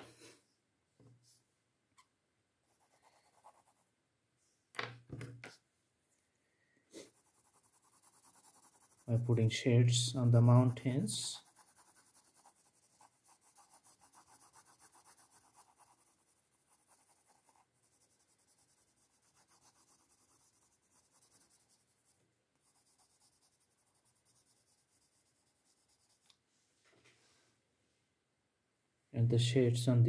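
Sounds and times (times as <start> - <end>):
pencil strokes on paper: 2.7 - 3.9, 6.9 - 26.4.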